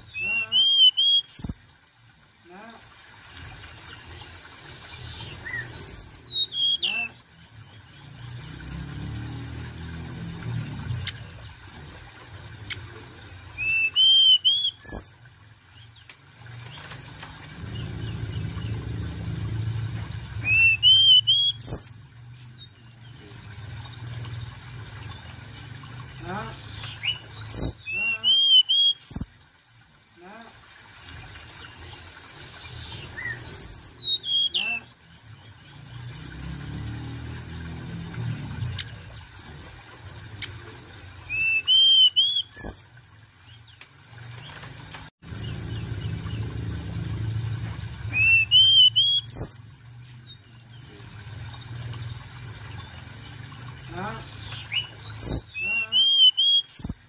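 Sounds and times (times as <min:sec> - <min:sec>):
bird whistling song: 0:00.0 - 0:01.6, 0:05.4 - 0:07.2, 0:13.6 - 0:15.2, 0:19.0 - 0:22.6, 0:26.8 - 0:29.3, 0:33.1 - 0:34.9, 0:41.3 - 0:42.9, 0:48.1 - 0:49.7, 0:54.4 - 0:57.0
faint bird twittering: 0:00.0 - 0:01.6, 0:09.6 - 0:24.3, 0:26.6 - 0:29.4, 0:44.2 - 0:52.0
low rumble: 0:17.4 - 0:20.5.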